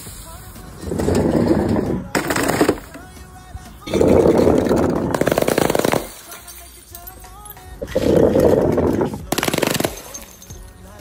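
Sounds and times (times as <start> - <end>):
soda cans puncturing and bursting: 1.0 - 3.2, 3.8 - 6.7, 7.8 - 10.6.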